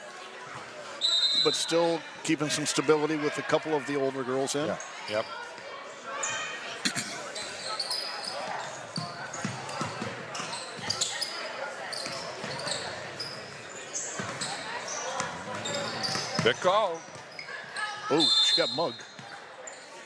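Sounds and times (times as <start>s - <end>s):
crowd voices: 0.0s - 20.0s
sneaker squeaks: 6.2s - 20.0s.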